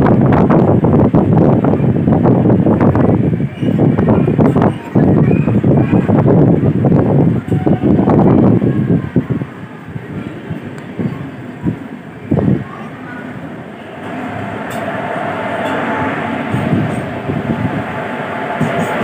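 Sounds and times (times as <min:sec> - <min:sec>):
passenger train passing: 0:00.0 - 0:19.0.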